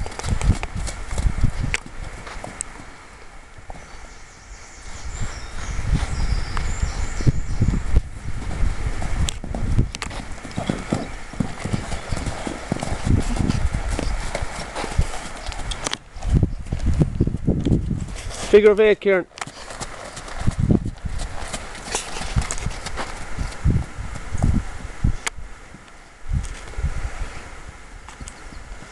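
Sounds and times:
hoofbeats on sand: 0:00.0 - 0:03.0, 0:05.0 - 0:24.8.

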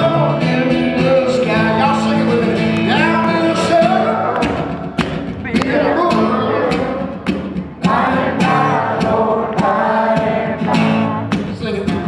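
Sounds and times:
man singing: 0:00.0 - 0:04.7, 0:05.5 - 0:07.2, 0:07.8 - 0:12.0
acoustic guitar: 0:00.0 - 0:12.0.

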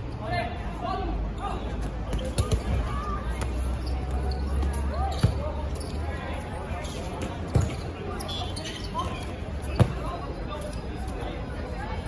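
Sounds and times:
players calling and chatting: 0:00.0 - 0:12.0
balls thudding: 0:09.7 - 0:10.1.

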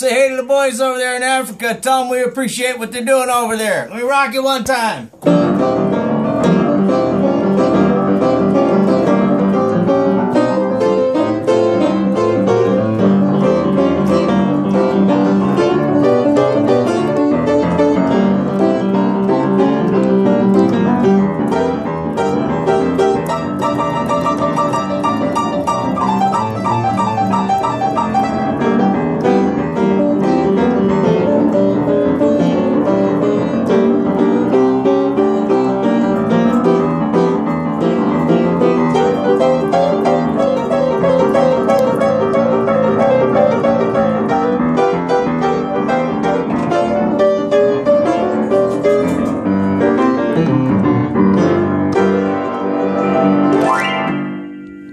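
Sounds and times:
upright piano tune: 0:00.0 - 0:54.9.

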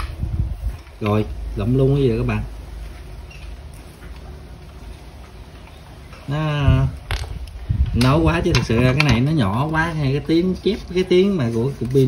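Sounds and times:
low steady hum: 0:00.0 - 0:12.0
wires scratching battery terminals: 0:00.0 - 0:12.0.

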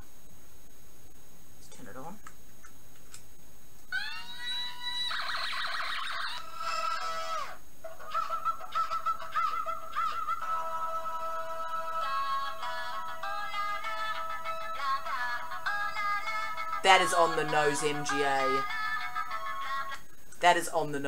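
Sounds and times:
toy guitar synthesized music: 0:08.2 - 0:19.9.

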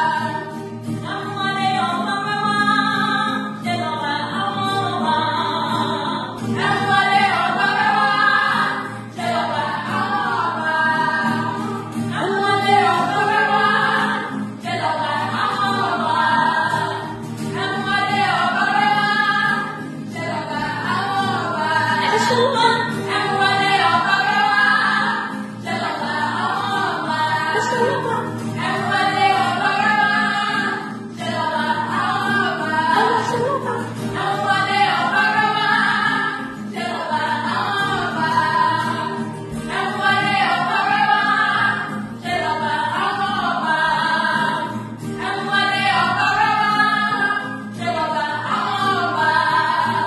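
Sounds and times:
strummed acoustic guitars: 0:00.0 - 0:50.0
women singing a hymn: 0:00.0 - 0:50.0.

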